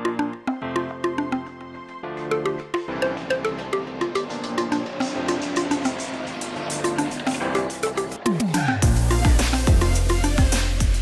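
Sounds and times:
electronic music with steady beat: 2.3s - 11.0s.

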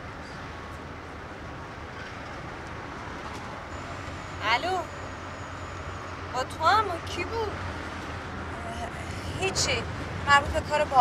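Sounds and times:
car road and engine noise: 0.0s - 11.0s
woman speaking: 4.4s - 4.9s, 6.4s - 7.6s, 8.6s - 11.0s.

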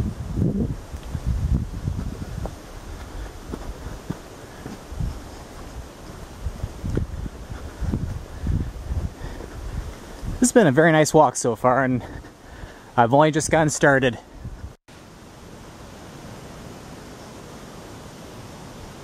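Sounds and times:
wind buffeting microphone: 0.0s - 10.7s, 13.4s - 14.8s
footsteps on dirt trail: 0.9s - 10.6s, 12.0s - 12.9s.

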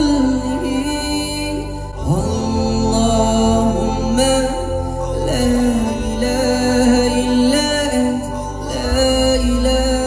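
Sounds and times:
low sustained vocal backing: 0.0s - 10.0s
man singing through a pa: 0.0s - 10.0s.

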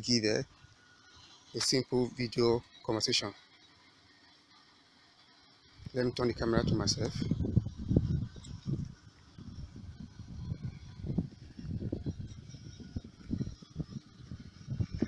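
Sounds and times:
wind buffeting: 6.1s - 15.0s.

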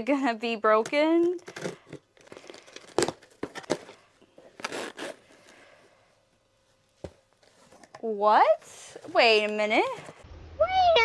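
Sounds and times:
tape ripping: 1.5s - 3.9s, 4.6s - 5.3s
cardboard rustling: 1.5s - 5.5s
packing tape snapping: 4.6s - 5.2s.

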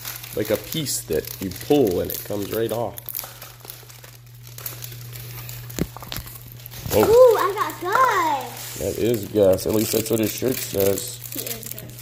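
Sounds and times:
plastic wrapping crinkling: 0.0s - 12.0s
child exclaiming: 6.9s - 8.6s.

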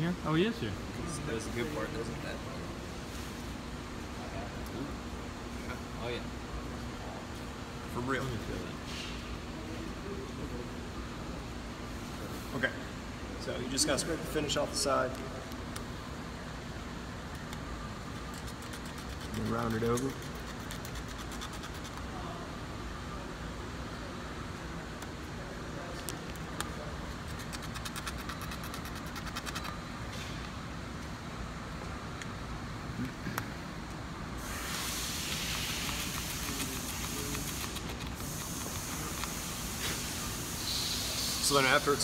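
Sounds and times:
steady background noise: 0.0s - 42.0s
loud hiss: 34.4s - 42.0s.

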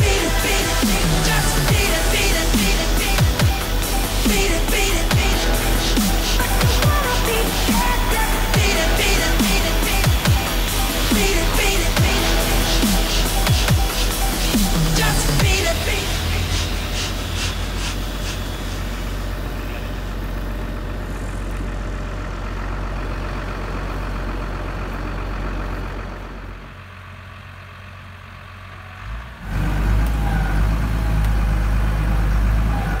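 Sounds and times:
tractor diesel engine idling: 0.0s - 33.0s.

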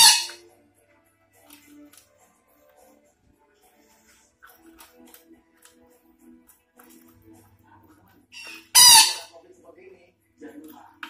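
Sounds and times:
parakeet harsh squawk: 0.0s - 0.4s, 8.4s - 9.3s.

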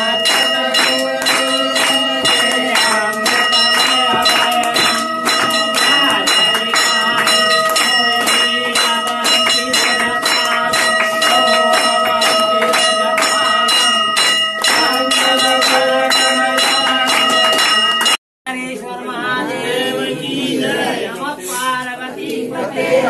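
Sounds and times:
brass bell ringing rapidly: 0.0s - 18.2s
rhythmic hand-clapping: 0.0s - 18.2s.

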